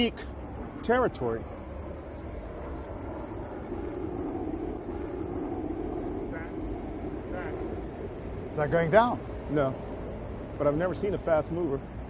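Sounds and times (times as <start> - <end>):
faint city traffic: 0.0 - 12.0
jet roar passing overhead: 0.0 - 12.0.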